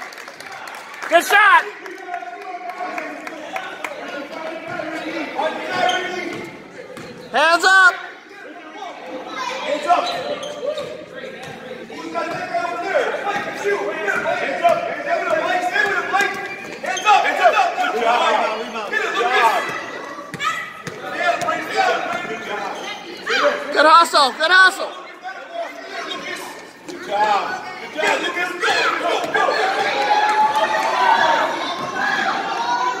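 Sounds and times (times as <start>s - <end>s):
basketball bouncing on court: 6.3s - 7.2s, 19.6s - 22.3s
people shouting: 28.0s - 33.0s.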